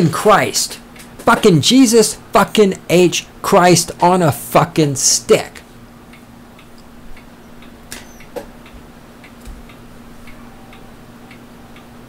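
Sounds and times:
steady low hum: 0.0s - 12.0s
faint regular ticking: 5.6s - 12.0s.

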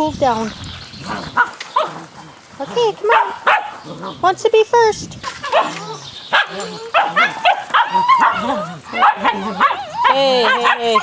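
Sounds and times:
dogs barking excitedly: 0.9s - 4.2s, 5.4s - 11.0s.

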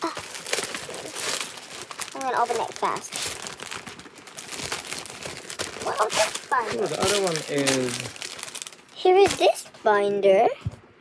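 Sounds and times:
packaging crinkling and tearing: 0.0s - 9.6s.

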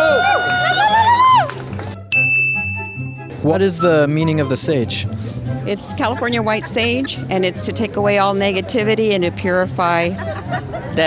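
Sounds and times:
background music: 0.0s - 11.0s
bright ding: 2.1s - 3.3s.

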